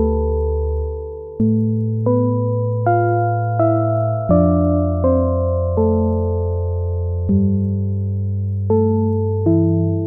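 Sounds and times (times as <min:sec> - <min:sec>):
synthesizer chords: 0:00.0 - 0:10.0.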